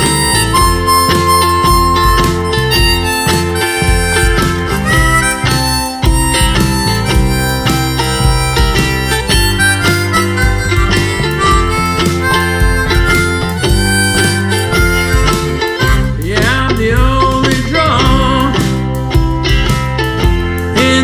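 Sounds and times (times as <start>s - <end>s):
harmonica solo: 0.0s - 16.5s
band with bass and beat: 0.0s - 21.0s
strummed acoustic strings: 0.0s - 21.0s.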